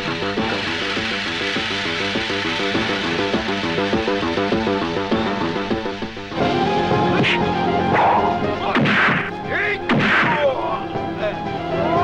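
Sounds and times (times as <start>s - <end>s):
background music: 0.0s - 12.0s
punch sound effects: 7.2s - 10.5s.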